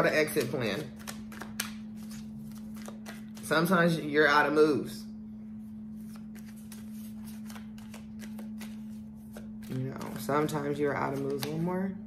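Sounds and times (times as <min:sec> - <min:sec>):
steady low hum: 0:00.0 - 0:12.0
cards being shuffled: 0:00.1 - 0:03.7, 0:06.0 - 0:11.7.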